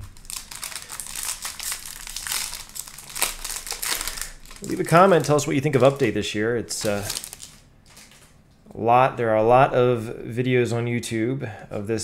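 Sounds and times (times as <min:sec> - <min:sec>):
plastic wrapper crinkling: 0:00.0 - 0:08.5.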